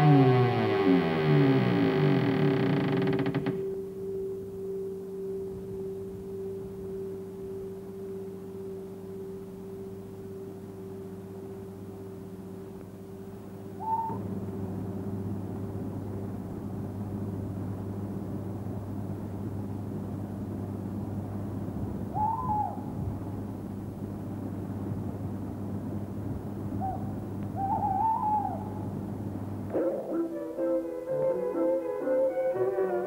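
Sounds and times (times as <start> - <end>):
low electrical hum: 0.0 - 33.0
hooting calls: 13.7 - 14.3, 22.1 - 23.0, 26.8 - 29.0, 29.7 - 33.0.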